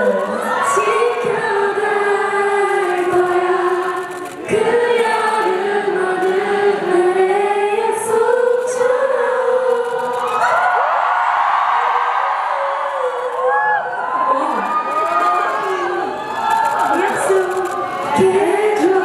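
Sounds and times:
audience cheering and screaming: 0.0 - 5.6, 7.9 - 19.0
woman singing into microphone: 0.0 - 10.6, 16.9 - 19.0.

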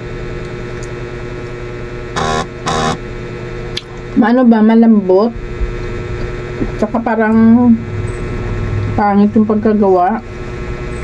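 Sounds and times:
electrical hum: 0.0 - 11.0
short evenly pitched tones: 2.2 - 3.0.

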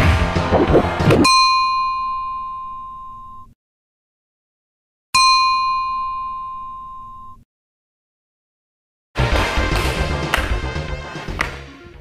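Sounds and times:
bell ringing: 1.2 - 3.4, 5.2 - 7.4.

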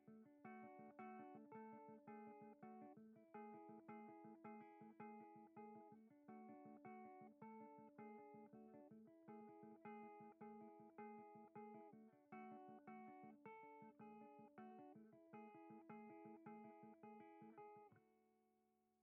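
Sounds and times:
electric guitar picked arpeggio: 0.0 - 17.9.

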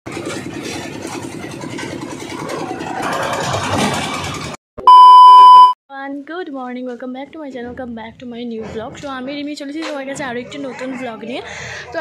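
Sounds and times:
concrete mixer engine running: 0.1 - 4.6
single-tone beep: 4.8 - 5.8.

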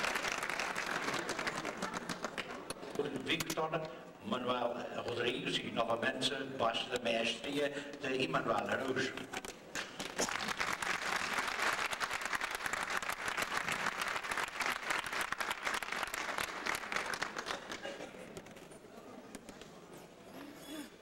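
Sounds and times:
audience applauding: 0.0 - 2.6, 9.8 - 18.0.

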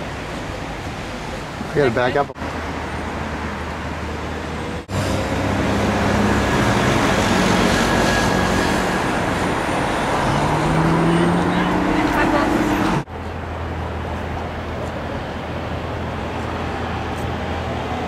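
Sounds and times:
cars driving past: 0.0 - 18.0
vehicle engine accelerating: 4.6 - 13.1.

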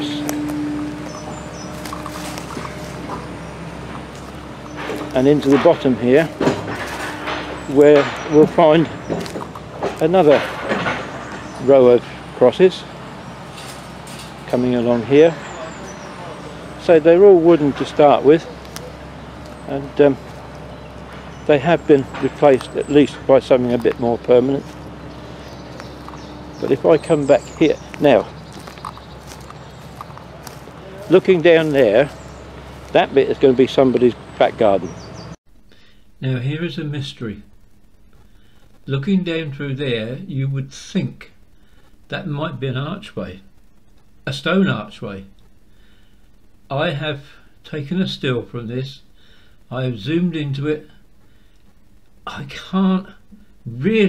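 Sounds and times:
high bird chirps: 0.0 - 5.5, 24.6 - 30.7
footsteps on leaf litter: 0.0 - 10.6, 15.6 - 35.0
steady low hum: 0.0 - 54.0.

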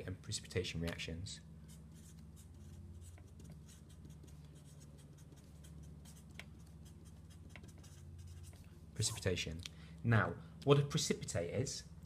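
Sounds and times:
steady low hum: 0.0 - 12.0
marker writing on paper: 1.7 - 9.3.

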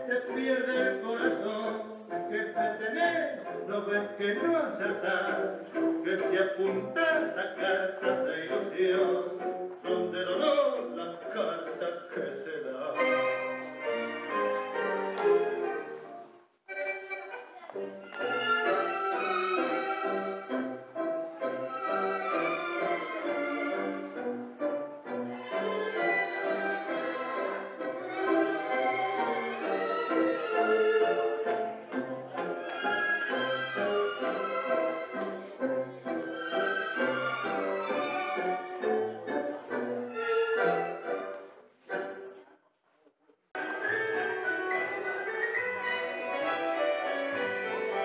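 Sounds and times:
different music: 0.0 - 42.4, 43.6 - 48.0
orchestral tango music with violins: 0.0 - 42.5, 43.6 - 48.0.

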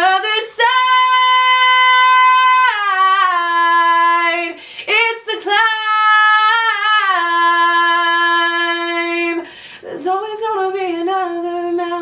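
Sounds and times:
young woman singing: 0.0 - 12.0
woman breathing in: 4.6 - 4.9, 9.4 - 9.9.

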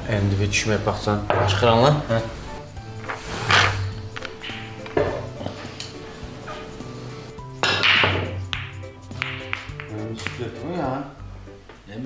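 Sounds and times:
background music: 0.0 - 12.0
pool balls clicking: 0.7 - 11.0.

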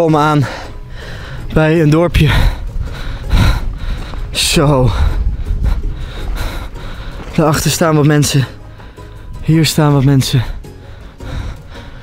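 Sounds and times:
wind rumble: 0.4 - 12.0.

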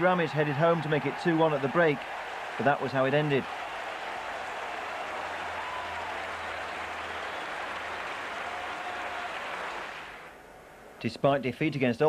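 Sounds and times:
stadium crowd cheering and applauding: 0.0 - 11.0.

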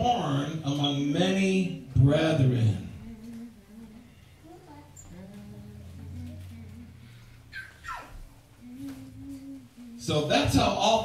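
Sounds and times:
person humming low notes: 2.8 - 7.5, 8.3 - 10.2.

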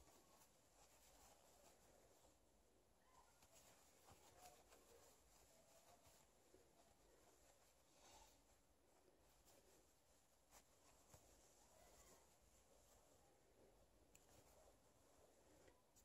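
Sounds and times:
faint fabric rustles: 0.0 - 16.0
soft clicks: 14.0 - 14.6.

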